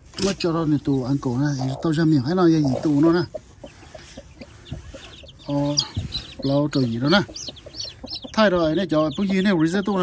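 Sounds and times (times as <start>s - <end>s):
man talking: 0.2s - 3.4s, 5.4s - 7.6s, 8.2s - 10.0s
chicks peeping: 0.2s - 10.0s
hen clucking: 0.2s - 10.0s.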